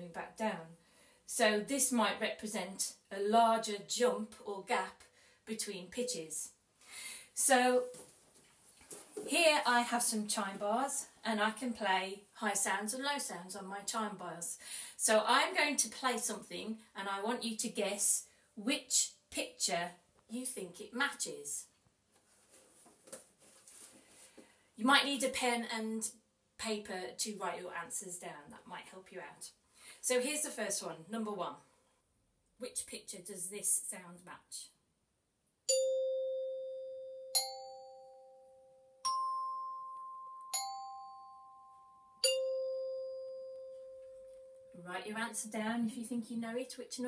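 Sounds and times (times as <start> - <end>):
metal chime bars struck with mallet: 35.7 - 38.4, 39.0 - 44.8.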